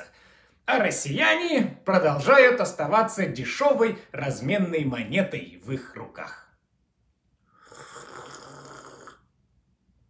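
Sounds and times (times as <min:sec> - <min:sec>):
man breathing noisily: 0:00.0 - 0:00.6.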